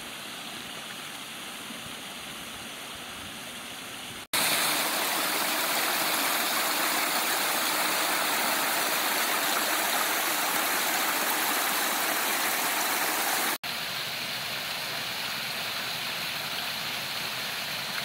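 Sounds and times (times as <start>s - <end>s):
water splashing over rocks: 4.3s - 13.8s.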